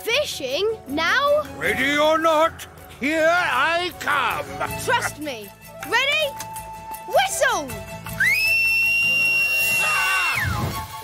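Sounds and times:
soft background music: 0.0 - 11.0
loud whistled note: 8.2 - 10.8.

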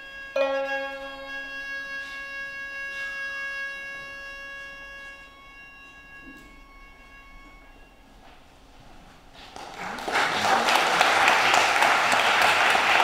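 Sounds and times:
held string note: 0.0 - 8.3.

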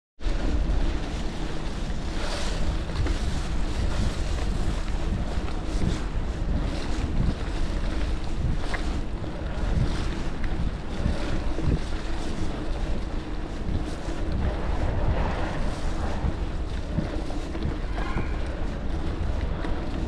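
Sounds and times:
bike tyres rumbling on dirt: 0.2 - 20.0
wind buffeting microphone: 0.2 - 20.0.

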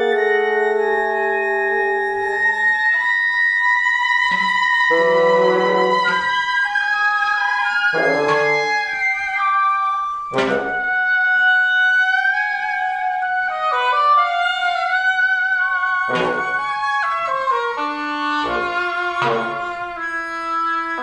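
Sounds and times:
wind quintet playing chamber music: 0.0 - 21.0.

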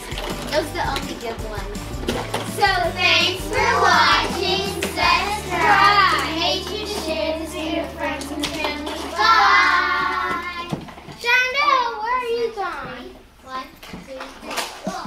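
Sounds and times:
children singing together: 2.4 - 10.8.

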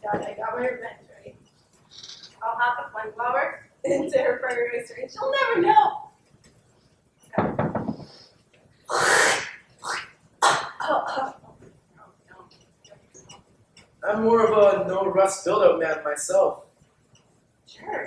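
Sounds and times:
coughing and sputtering: 8.9 - 11.4.

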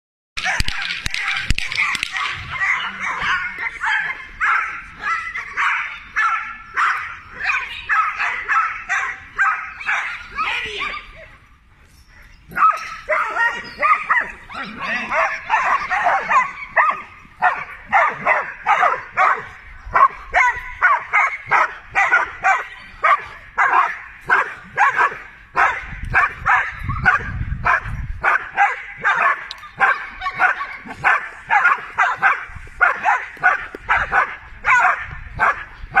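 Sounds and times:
dogs barking rapidly: 0.4 - 11.1, 12.5 - 36.0.

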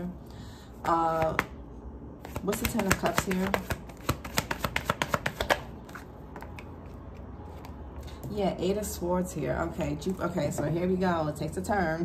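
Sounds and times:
cards being shuffled: 2.2 - 7.8.

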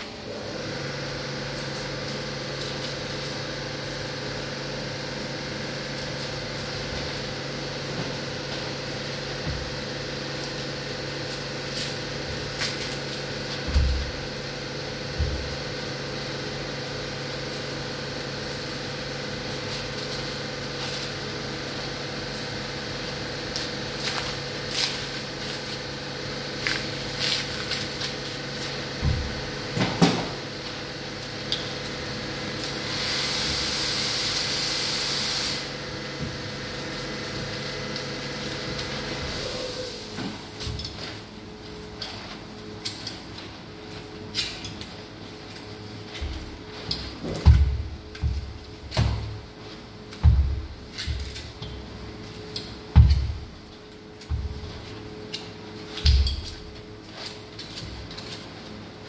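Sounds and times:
steady machine hum: 0.0 - 59.0
hiss: 32.8 - 35.7, 39.3 - 40.2.

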